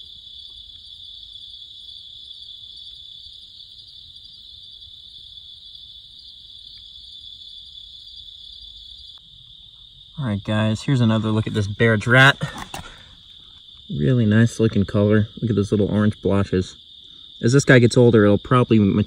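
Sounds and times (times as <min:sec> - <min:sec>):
insects chirping at night: 0:00.0 - 0:19.0.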